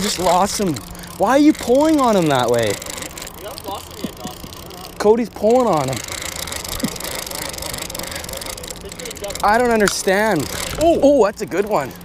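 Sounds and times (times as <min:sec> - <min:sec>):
fishing reel clicking: 0:00.0 - 0:12.0.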